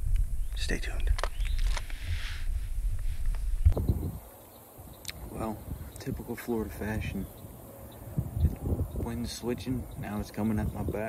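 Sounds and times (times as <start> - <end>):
soft hiss: 0.0 - 6.9
wind buffeting microphone: 0.0 - 11.0.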